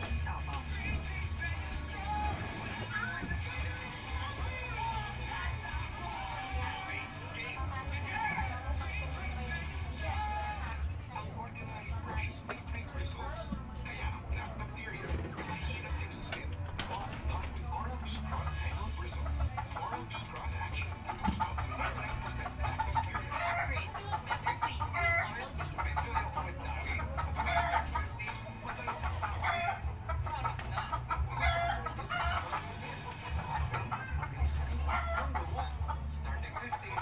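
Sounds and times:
chickens clucking: 0.0s - 37.0s.

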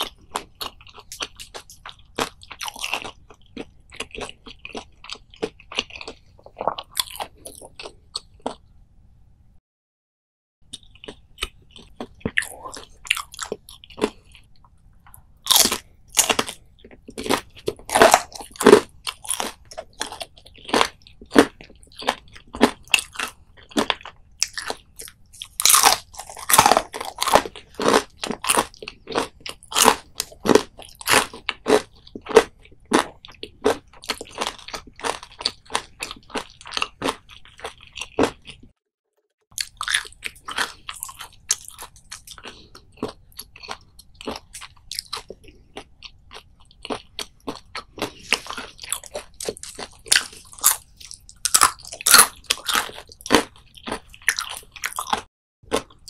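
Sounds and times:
crunching fried food chewing: 0.0s - 8.7s, 10.7s - 38.8s, 39.5s - 56.0s.

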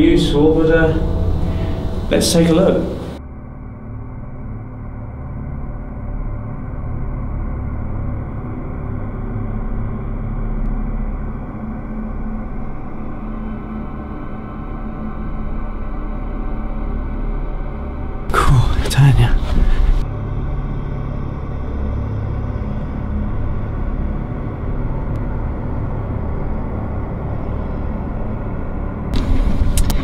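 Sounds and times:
dark ambient droning music: 0.0s - 30.0s.

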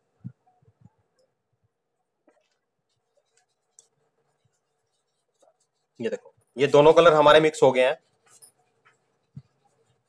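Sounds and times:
paintbrush scratching on paper: 2.3s - 10.0s.

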